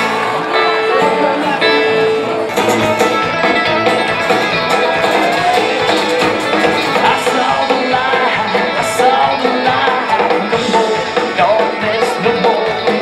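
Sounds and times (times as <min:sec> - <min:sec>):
live band music: 0:00.0 - 0:13.0
strummed acoustic guitar: 0:00.0 - 0:13.0.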